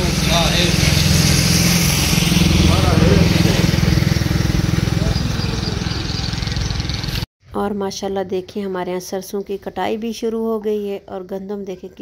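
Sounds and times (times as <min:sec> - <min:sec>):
engine idling: 0:02.6 - 0:07.2.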